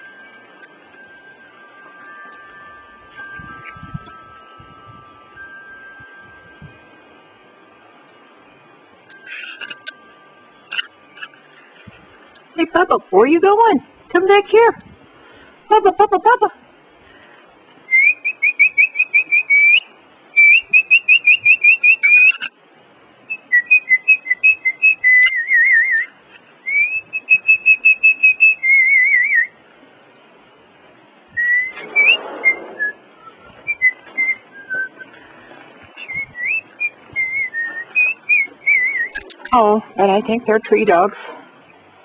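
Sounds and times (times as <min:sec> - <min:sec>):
rustle: 0:00.0 - 0:42.0
person whistling: 0:17.9 - 0:19.8, 0:20.4 - 0:22.5, 0:26.7 - 0:29.5, 0:31.4 - 0:35.2, 0:36.0 - 0:39.2.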